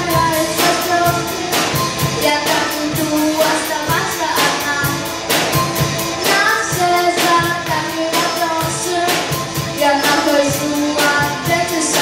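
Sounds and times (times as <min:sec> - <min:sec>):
girl singing: 0:00.0 - 0:05.1, 0:06.2 - 0:12.0
bass guitar: 0:00.0 - 0:12.0
drum kit beat: 0:00.0 - 0:12.0
keyboard: 0:00.0 - 0:12.0.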